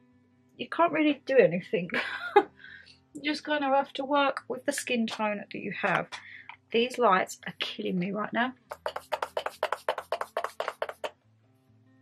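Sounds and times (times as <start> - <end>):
quiet background music: 0.0 - 12.0
spray bottle misting: 8.7 - 11.1.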